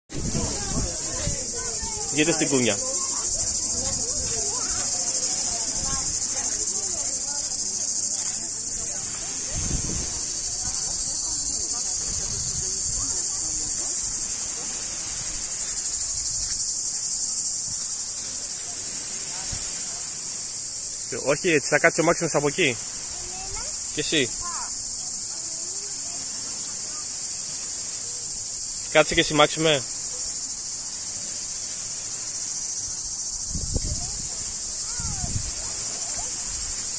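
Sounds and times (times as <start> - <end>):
cicadas chorus: 0.1 - 36.9.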